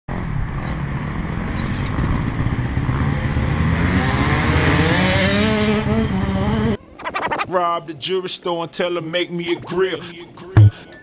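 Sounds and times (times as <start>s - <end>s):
dirt bike engine revving: 2.4s - 6.8s.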